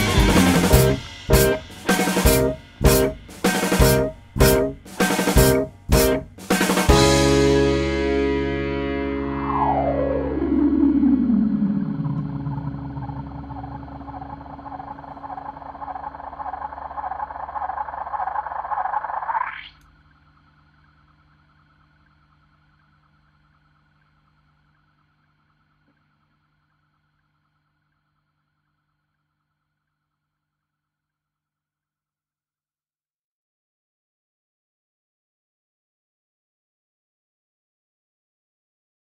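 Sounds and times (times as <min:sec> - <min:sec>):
electric guitar and keyboards: 0:00.0 - 0:17.1.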